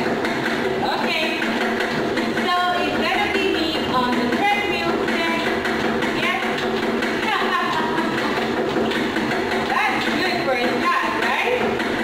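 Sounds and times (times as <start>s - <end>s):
footsteps jogging on treadmill: 0.0s - 12.0s
treadmill running: 0.0s - 12.0s.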